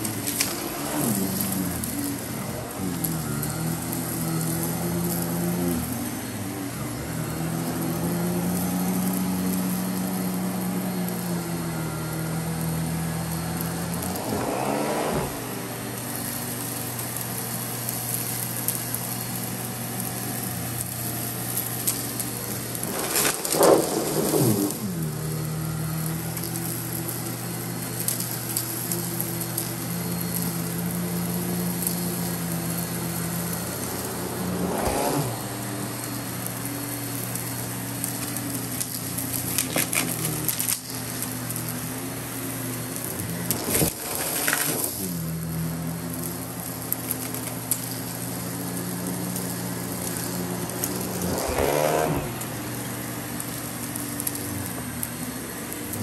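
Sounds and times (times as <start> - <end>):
vacuum cleaner running on rug: 0.0 - 56.0.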